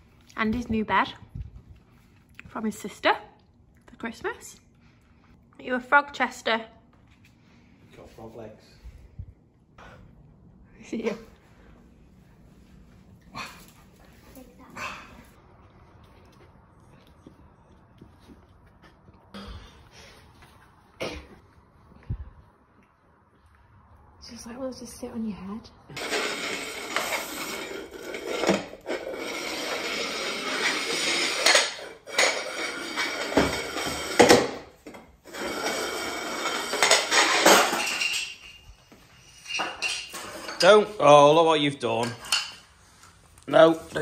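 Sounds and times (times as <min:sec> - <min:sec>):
food dish scraping on tiled floor: 0:26.0 - 0:41.0, 0:42.0 - 0:43.2.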